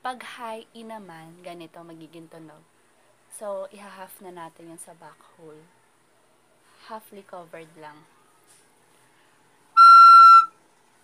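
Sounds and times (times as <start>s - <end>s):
recorder playing high note: 9.8s - 10.6s.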